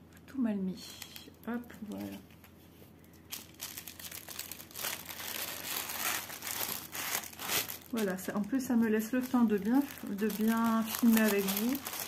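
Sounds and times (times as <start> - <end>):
plastic bag crinkling: 0.9 - 12.0.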